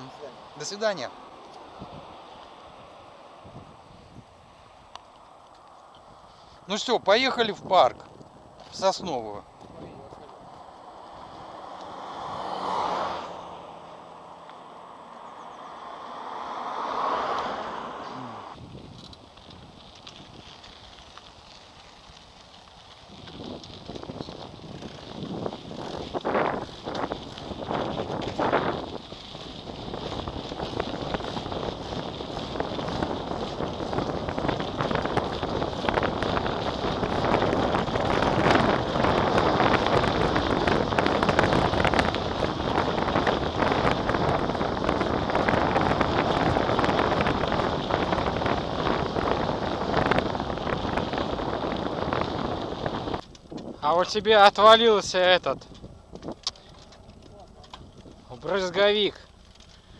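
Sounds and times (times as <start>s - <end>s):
wind rushing over microphone: 0.0s - 59.2s
bike rattle and tyre noise: 0.0s - 59.9s.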